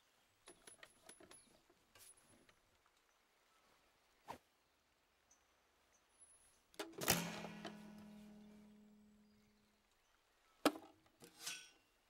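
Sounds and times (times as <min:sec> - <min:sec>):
violins strummed chord ringing: 0:07.0 - 0:09.0.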